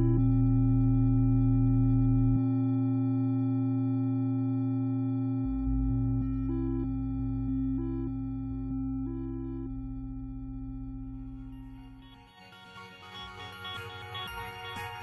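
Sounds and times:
synthesizer held electronic tones: 0.0s - 15.0s
short synthesizer notes: 3.9s - 15.0s.

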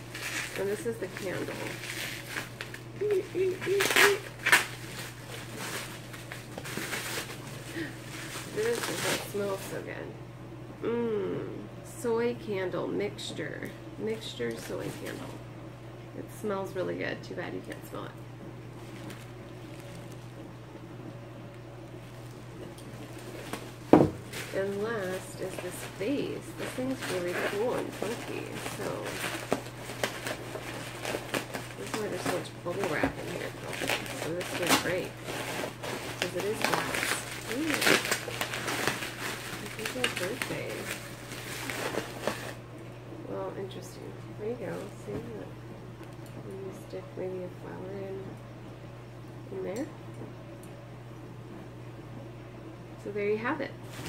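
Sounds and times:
bubble wrap rustling and crinkling: 0.0s - 9.9s, 14.2s - 15.4s, 18.6s - 20.4s, 21.8s - 42.7s, 44.5s - 45.3s
faint crackles: 21.5s - 42.6s.

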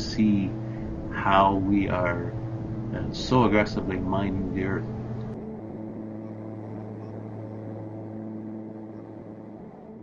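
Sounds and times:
aircraft propeller drone in cabin: 0.0s - 10.0s.

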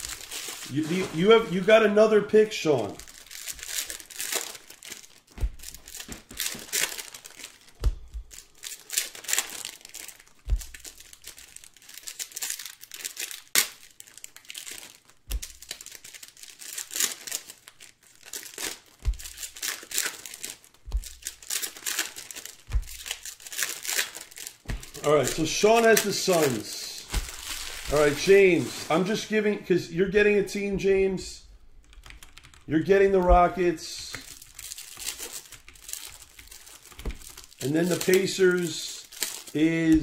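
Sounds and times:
wrappers crinkling: 0.0s - 31.2s, 32.2s - 40.0s.

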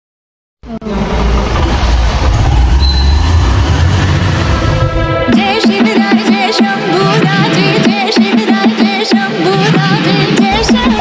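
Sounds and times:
motorcycle engine starting and running: 0.8s - 5.8s.

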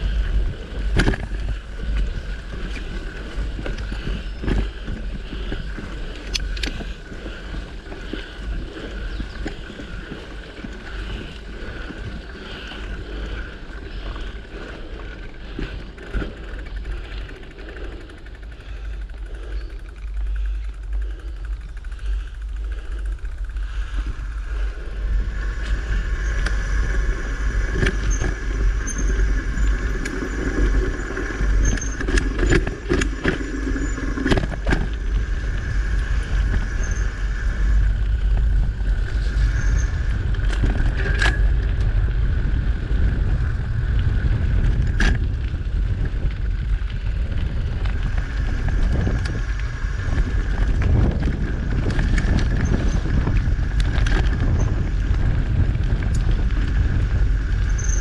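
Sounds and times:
bike clicking and rattling: 0.0s - 58.0s
tyres rumbling on dirt: 0.0s - 58.0s
wind buffeting microphone: 0.0s - 58.0s.

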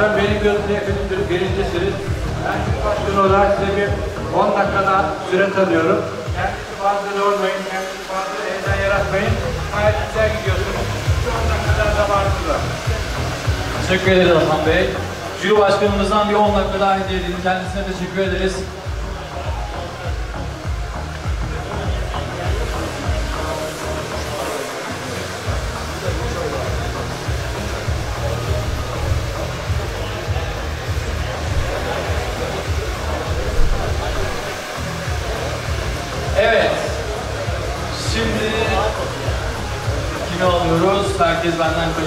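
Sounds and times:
background music: 0.0s - 42.0s
hair dryer blowing: 0.0s - 42.0s.

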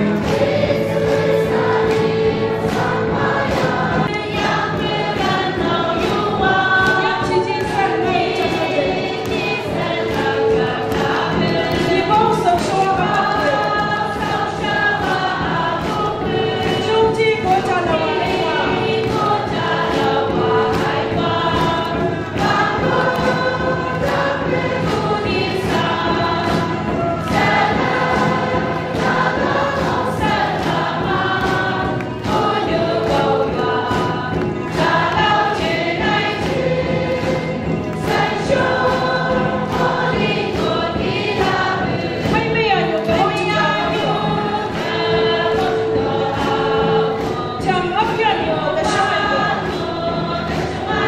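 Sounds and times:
congregation singing gospel song: 0.0s - 51.0s
instrumental accompaniment: 0.0s - 51.0s.

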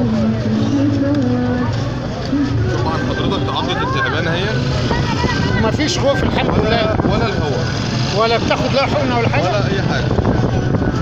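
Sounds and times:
street traffic rumble: 0.0s - 11.0s
man talking: 2.7s - 4.7s, 5.6s - 10.1s.

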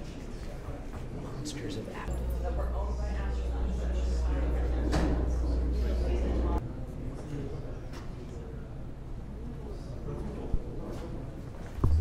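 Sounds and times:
steady low hum: 0.5s - 12.0s.

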